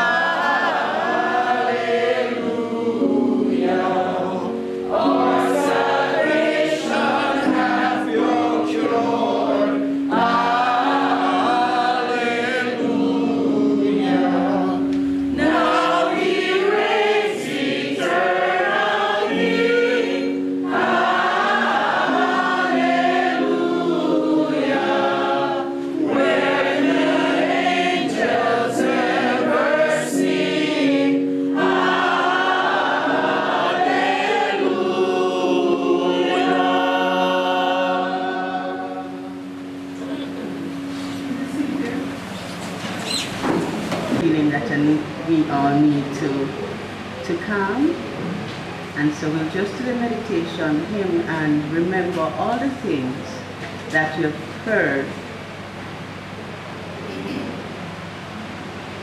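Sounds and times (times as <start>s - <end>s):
people singing a hymn: 0.0s - 44.3s.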